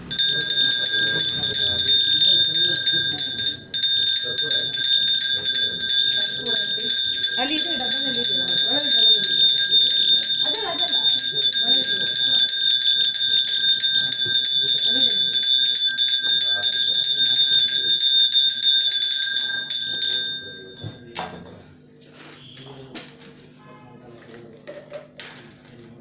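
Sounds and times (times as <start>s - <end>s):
voices talking: 0.0s - 18.4s, 19.0s - 26.0s
hand bell ringing rapidly: 0.0s - 21.8s.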